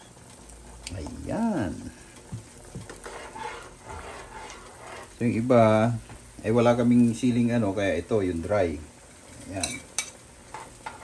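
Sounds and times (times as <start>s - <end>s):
faint steady hiss: 0.0s - 11.0s
metal spoon stirring saucepan: 2.8s - 5.2s.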